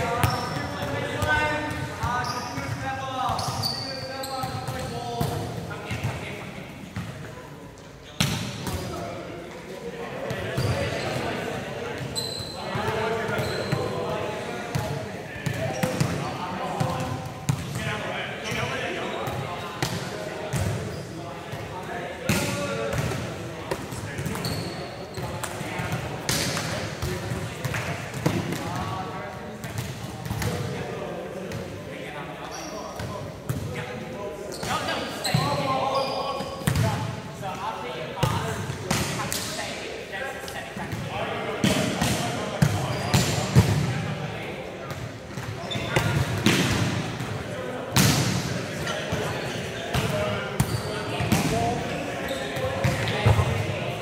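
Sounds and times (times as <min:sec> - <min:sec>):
players calling and chattering: 0:00.0 - 0:54.0.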